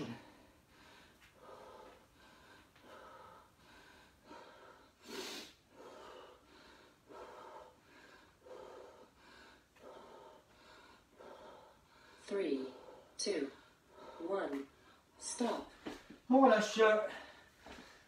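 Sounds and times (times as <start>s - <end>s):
man breathing quickly: 0.2s - 16.3s, 17.1s - 18.0s
sharp exhale: 5.0s - 5.6s.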